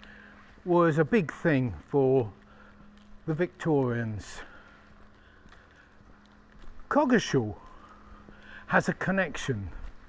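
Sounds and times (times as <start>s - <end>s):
faint steady hum: 0.0s - 10.0s
footsteps on pavement: 0.0s - 10.0s
man's voice: 0.6s - 2.4s, 3.2s - 4.6s, 6.9s - 7.8s, 8.6s - 9.9s.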